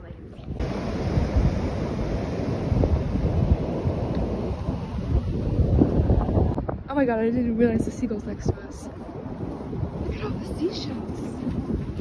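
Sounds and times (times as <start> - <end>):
wind buffeting microphone: 0.0 - 12.0
ocean surf on beach: 0.5 - 12.0.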